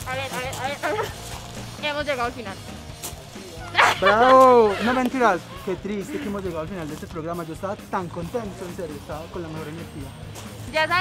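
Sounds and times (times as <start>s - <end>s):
young people laughing: 3.5s - 6.6s
people crying aww: 3.6s - 6.5s.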